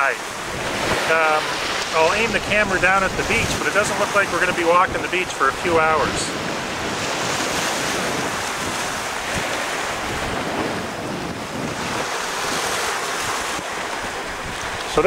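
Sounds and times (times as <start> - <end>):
small waves washing against shore: 0.0 - 15.0
wind blowing across microphone: 0.0 - 15.0.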